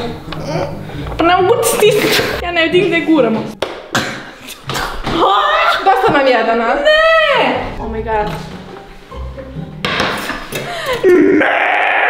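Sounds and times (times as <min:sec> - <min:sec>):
young women shrieking and laughing: 0:10.8 - 0:12.0.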